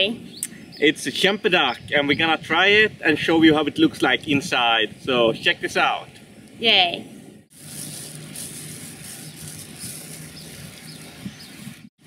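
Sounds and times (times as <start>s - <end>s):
steady hiss: 7.4s - 11.9s.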